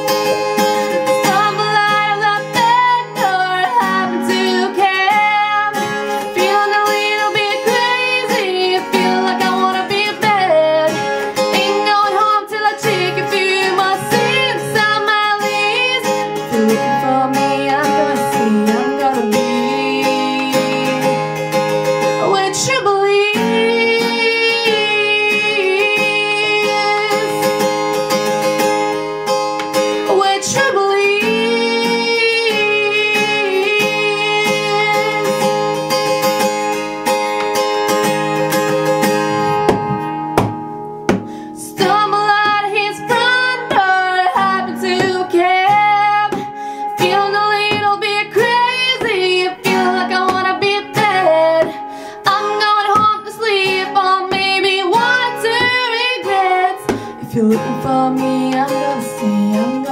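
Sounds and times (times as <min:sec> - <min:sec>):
woman singing: 0:00.0 - 0:28.3, 0:29.8 - 0:36.4, 0:41.1 - 0:59.9
strummed acoustic guitar: 0:00.0 - 0:59.9.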